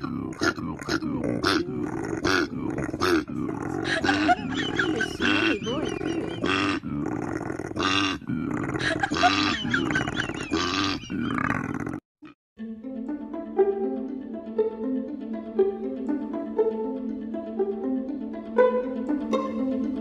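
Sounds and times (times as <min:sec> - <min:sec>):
koala bellowing: 0:00.0 - 0:06.9.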